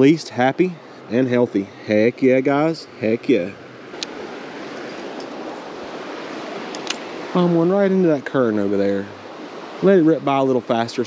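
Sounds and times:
creek water flowing: 0.0 - 11.0.

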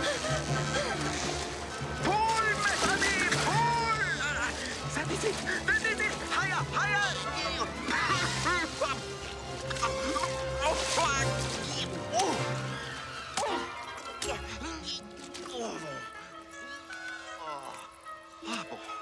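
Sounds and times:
film score music: 0.0 - 19.0
water sloshing and splashing: 0.0 - 19.0.

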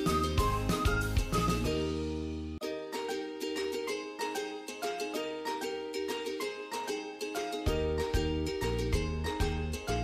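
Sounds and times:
plucked string background music: 0.0 - 10.0.

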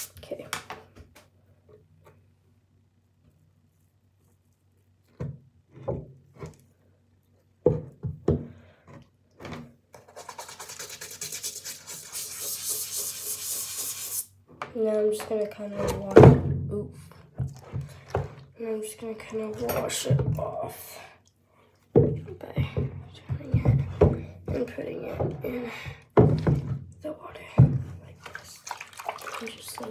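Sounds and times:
toothbrush scrubbing: 10.0 - 14.3.

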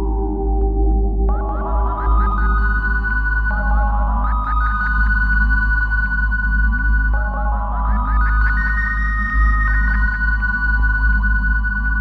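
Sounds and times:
deep synthesizer bass drone: 0.0 - 12.0
held high synthesizer tones: 1.3 - 5.3.

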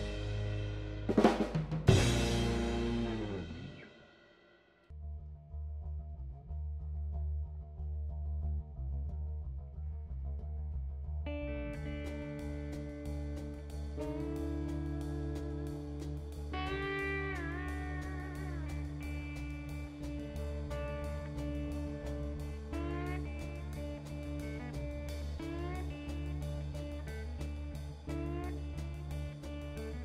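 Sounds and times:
lap steel slide guitar: 0.0 - 3.9, 11.3 - 30.0
slow electric bass line: 0.0 - 3.9, 5.0 - 30.0
drum and chord hits ringing out: 0.0 - 4.5
drums: 0.0 - 4.9, 11.3 - 30.0.

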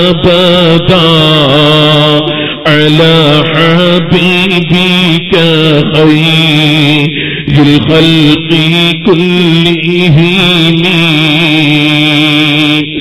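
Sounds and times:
man chanting melodically: 0.0 - 13.0
short breaths: 2.3 - 2.7, 7.1 - 7.5.

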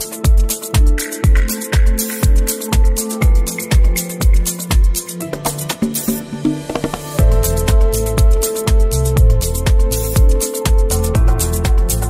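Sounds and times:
kick drum: 0.0 - 5.1, 7.2 - 12.0
hi-hats: 0.0 - 12.0.

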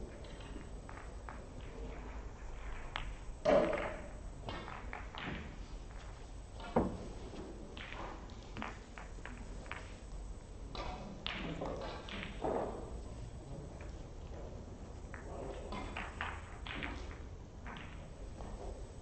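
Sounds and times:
low hall hum: 0.0 - 19.0
snooker balls clicking and knocking: 0.0 - 19.0.

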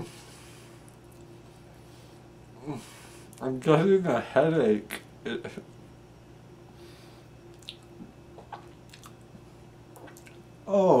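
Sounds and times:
low steady hum: 0.0 - 11.0
wet mouth clicks chewing: 7.5 - 9.3.

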